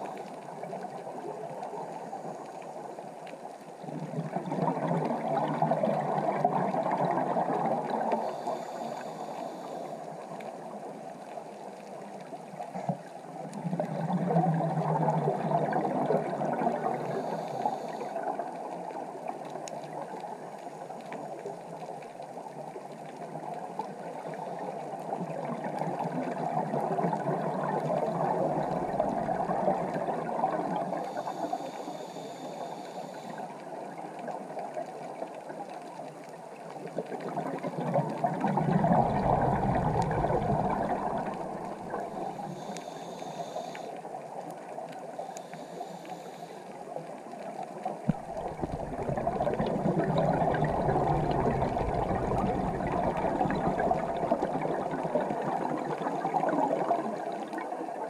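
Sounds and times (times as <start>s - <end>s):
exhaled bubbles gurgling underwater: 0.0s - 58.0s
regulator hiss: 8.2s - 10.1s, 31.1s - 33.4s, 40.9s - 44.0s, 45.2s - 46.8s.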